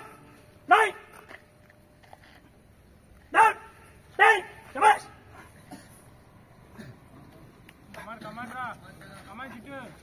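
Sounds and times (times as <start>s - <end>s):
dog barking: 3.3s - 5.1s.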